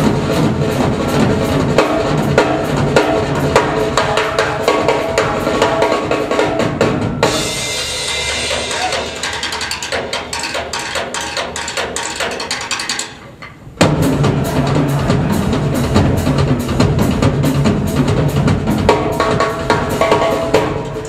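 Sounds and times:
bass drum and toms: 0:00.0 - 0:13.1, 0:13.8 - 0:21.0
cymbals washing: 0:00.0 - 0:21.0
fast tom and snare strokes: 0:00.0 - 0:21.0.

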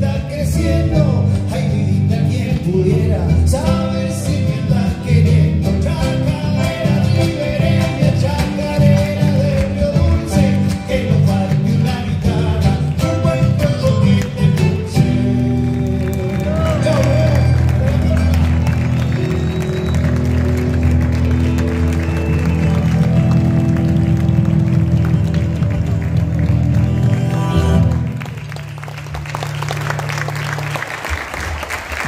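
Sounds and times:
acoustic trio playing: 0:00.0 - 0:30.8
audience applause: 0:15.4 - 0:32.0.

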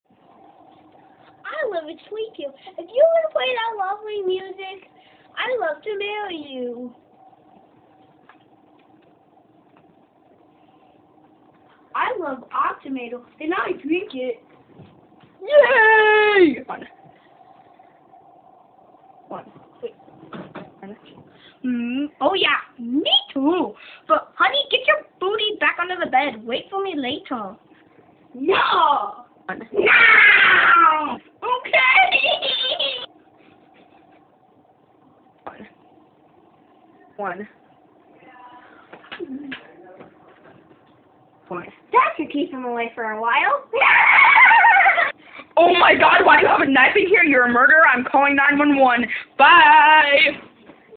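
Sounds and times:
faint steady hum: 0:00.1 - 0:50.9.

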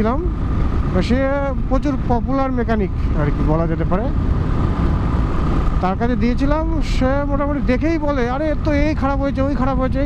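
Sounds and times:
motorcycle engine rumble: 0:00.0 - 0:10.0
wind and road noise: 0:00.0 - 0:10.0.

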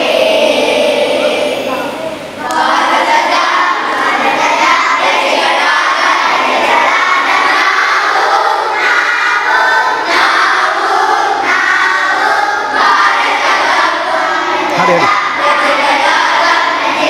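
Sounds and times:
children singing in chorus: 0:00.0 - 0:17.0.

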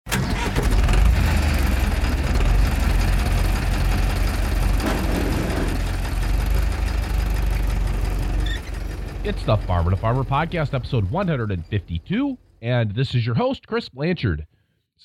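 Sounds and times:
engine running with low rumble: 0:00.1 - 0:12.6.

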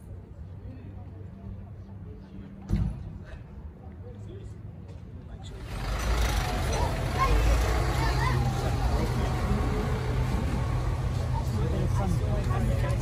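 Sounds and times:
diesel engine droning: 0:05.6 - 0:13.0
people talking: 0:06.5 - 0:13.0.

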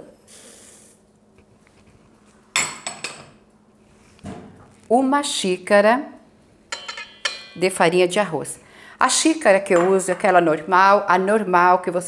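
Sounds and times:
glass bowl clinking on metal bowl: 0:06.7 - 0:07.6.

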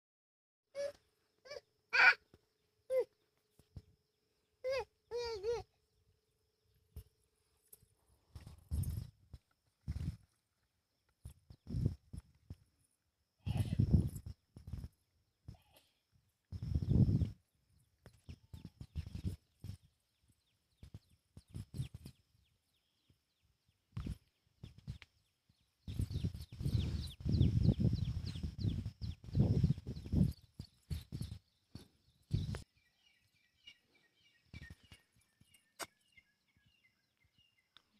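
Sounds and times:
toddler calling: 0:00.8 - 0:02.2, 0:02.9 - 0:03.1, 0:04.6 - 0:05.7.

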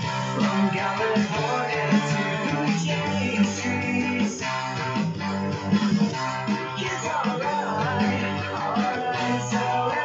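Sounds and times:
electric guitar chords: 0:00.0 - 0:10.0
low bass line: 0:00.0 - 0:10.0.

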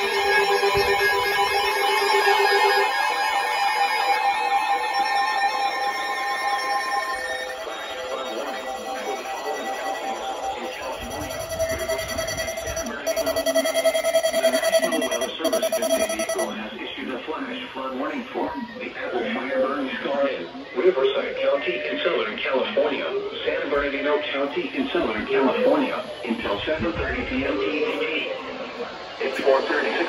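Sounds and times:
loud pulsing tone: 0:00.0 - 0:16.7
synthesized voice message: 0:07.6 - 0:16.6
overlapping alert beeps: 0:08.5 - 0:16.6.

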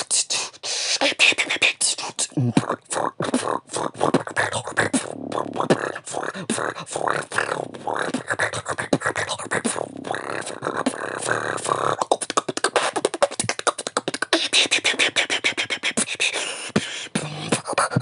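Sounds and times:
vocal beatboxing: 0:00.0 - 0:18.0.

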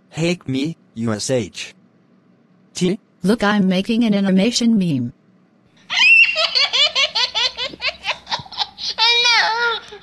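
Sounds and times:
high-pitched laughter: 0:05.9 - 0:10.0.

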